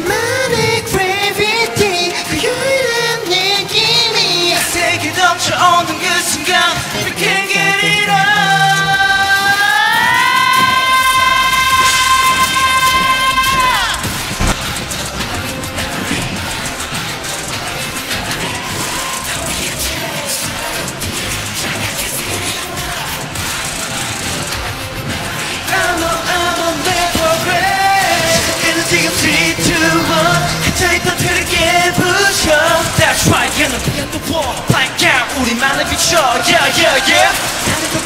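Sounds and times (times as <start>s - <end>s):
man singing long high note: 0.0s - 14.0s, 25.7s - 38.0s.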